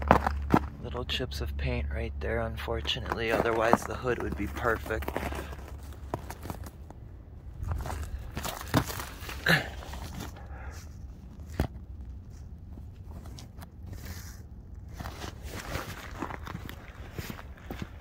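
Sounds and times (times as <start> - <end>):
steady low rumble: 0.0 - 18.0
footsteps: 2.7 - 7.0, 7.6 - 18.0.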